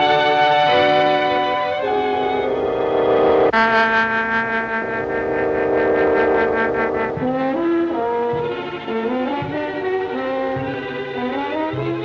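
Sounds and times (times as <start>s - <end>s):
orchestral chord with pulsing tremolo: 0.0s - 12.0s.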